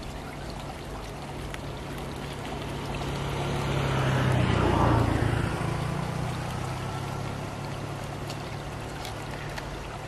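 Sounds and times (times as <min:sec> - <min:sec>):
small stream running: 0:00.0 - 0:10.0
motor engine passing by: 0:02.1 - 0:09.7.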